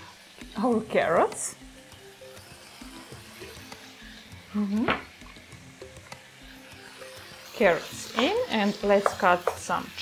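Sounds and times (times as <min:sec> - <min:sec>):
soft background music: 0:00.0 - 0:10.0
vegetables sizzling in pot: 0:00.0 - 0:10.0.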